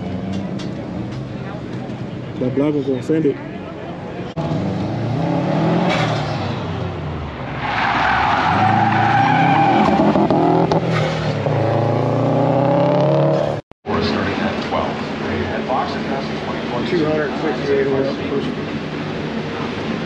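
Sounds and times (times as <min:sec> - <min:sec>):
car engine revving: 0:04.4 - 0:13.6
tire squeal: 0:07.4 - 0:11.4.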